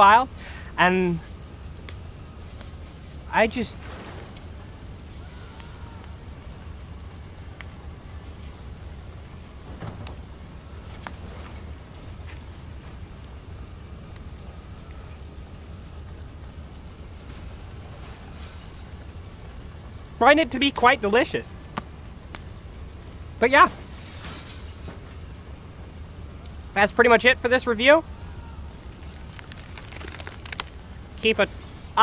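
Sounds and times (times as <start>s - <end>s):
faint ticks: 21.6s - 22.5s.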